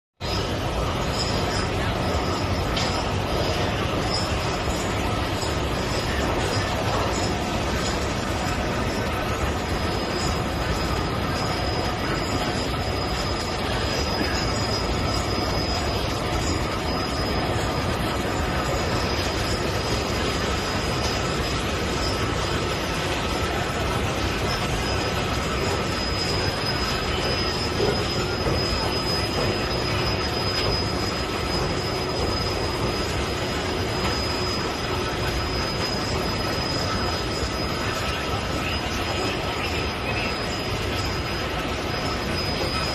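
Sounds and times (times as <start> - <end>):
high-pitched squeal: 0.2 - 42.9
loud excavator machine noise: 0.2 - 42.9.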